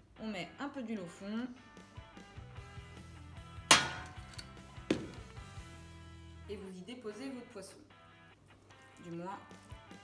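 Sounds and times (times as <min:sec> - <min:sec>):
background music: 0:00.0 - 0:10.0
sharp knocks on metal counter: 0:03.7 - 0:05.2.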